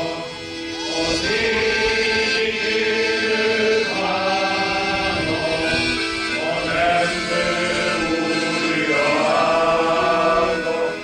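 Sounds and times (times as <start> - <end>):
male choir singing in harmony: 0.0 - 11.0.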